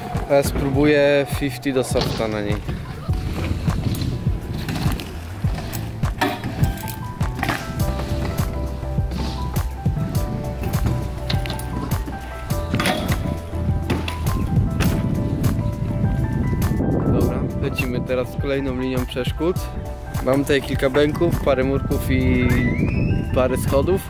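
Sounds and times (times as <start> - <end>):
bike tyres rolling on concrete: 0.0 - 17.0
background music with bass line: 0.0 - 24.0
bikes landing with sharp knocks: 1.9 - 15.6.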